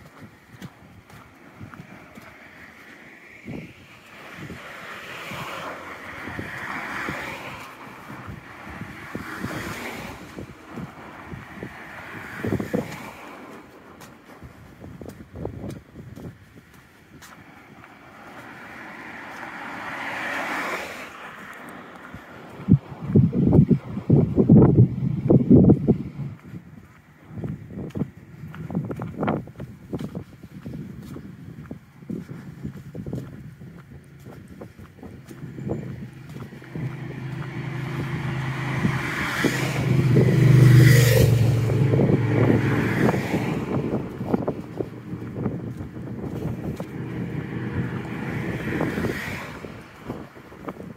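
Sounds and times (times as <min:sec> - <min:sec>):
car passing: 0:00.0 - 0:15.4, 0:16.2 - 0:29.4, 0:31.8 - 0:50.9.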